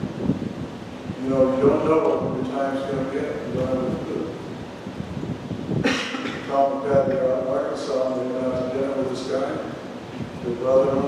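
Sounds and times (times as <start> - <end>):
man speaking into microphone: 1.2 - 4.4, 6.3 - 11.0.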